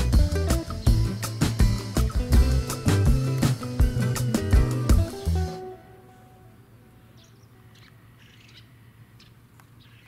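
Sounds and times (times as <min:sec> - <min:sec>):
faint bird chirps: 0:05.4 - 0:10.0.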